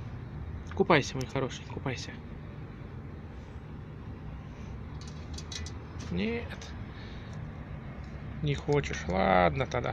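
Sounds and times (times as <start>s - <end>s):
distant traffic rumble: 0.0s - 9.9s.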